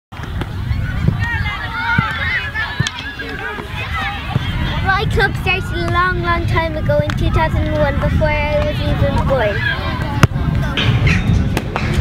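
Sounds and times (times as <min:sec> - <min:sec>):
wind rumbling on microphone: 0:00.2 - 0:12.0
girls calling and chattering: 0:00.4 - 0:11.4.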